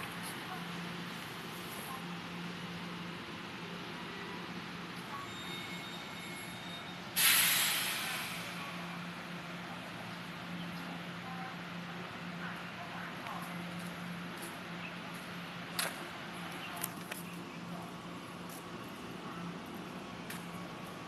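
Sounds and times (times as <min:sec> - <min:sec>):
trains idling hum: 0:00.0 - 0:21.0
compressed air hiss: 0:07.2 - 0:08.6.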